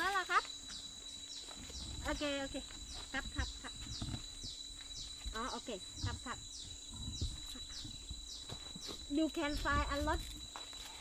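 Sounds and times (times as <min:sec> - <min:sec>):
insect drone: 0:00.0 - 0:11.0.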